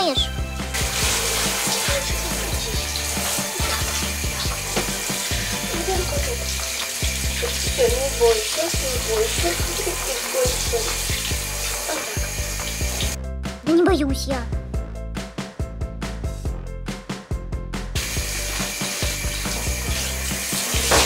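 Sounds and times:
background music with bass line: 0.0s - 10.0s, 10.6s - 21.0s
shower head spraying water: 0.6s - 13.2s, 18.0s - 21.0s.

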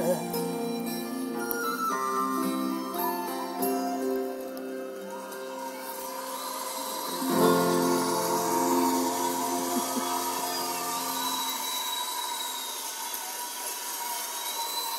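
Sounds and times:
steady hiss: 0.0s - 14.9s
acoustic guitar chord ringing: 7.1s - 11.9s.

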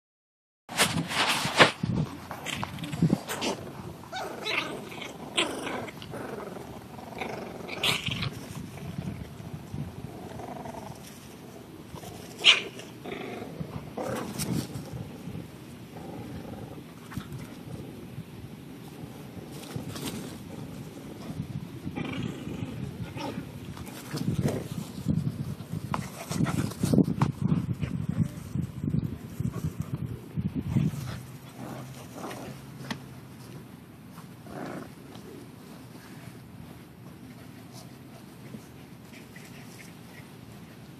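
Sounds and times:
puppies growling and grunting: 2.3s - 25.0s, 30.6s - 33.0s, 34.4s - 35.7s.

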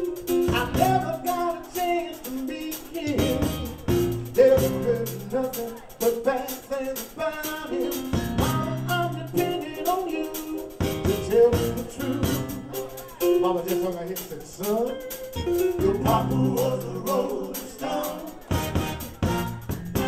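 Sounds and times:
people singing: 0.0s - 12.9s, 15.7s - 19.0s
bass: 0.0s - 20.0s
drum kit beat: 0.0s - 20.0s
keyboard: 0.0s - 20.0s.

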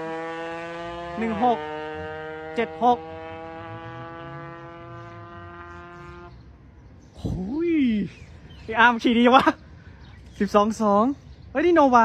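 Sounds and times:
two-stroke engine at full throttle: 0.0s - 6.5s.

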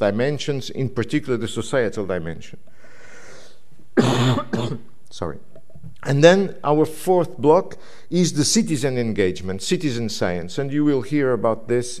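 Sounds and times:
man coughing into microphone: 4.0s - 4.9s.

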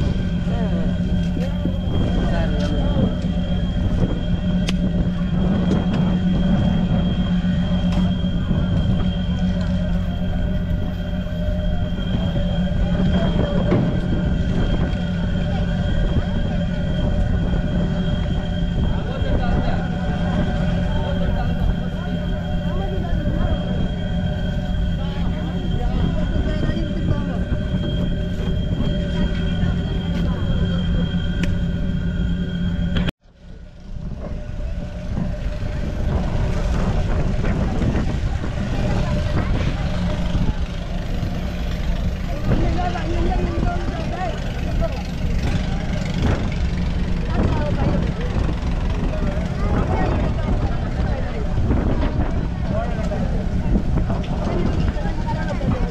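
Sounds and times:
boat engine running: 0.0s - 55.9s.

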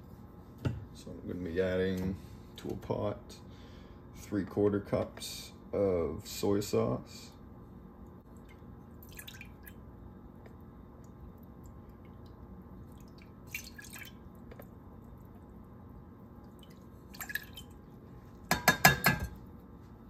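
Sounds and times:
soft liquid splashes: 8.0s - 9.8s, 10.4s - 15.6s, 16.4s - 18.5s
liquid trickling into pot: 8.3s - 9.8s, 11.5s - 15.5s, 16.4s - 17.9s.

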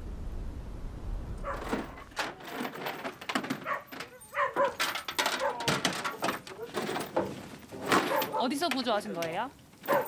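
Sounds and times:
dogs barking: 1.4s - 2.1s, 3.6s - 6.8s, 8.0s - 8.6s.

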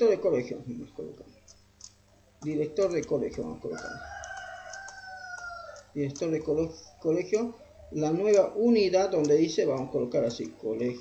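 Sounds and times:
faint keyboard clicks: 1.4s - 7.4s, 8.2s - 11.0s
rooster crowing: 3.7s - 6.0s.

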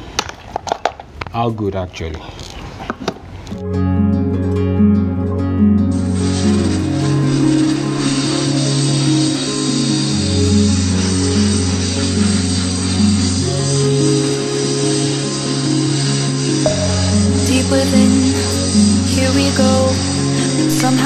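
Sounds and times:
background guitar music: 3.5s - 21.0s
pressure washer spraying hiss: 5.9s - 21.0s.

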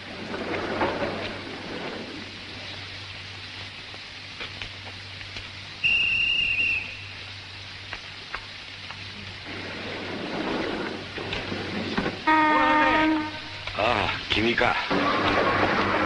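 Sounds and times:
steady rain: 0.0s - 16.0s
water drips: 2.3s - 9.6s, 12.2s - 16.0s
high steady whistle: 5.8s - 7.2s.

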